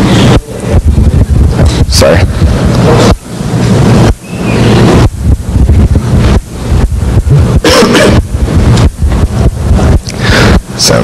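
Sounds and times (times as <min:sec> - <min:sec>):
rough low rumble: 0:00.0 - 0:11.0
tape hiss: 0:00.0 - 0:11.0.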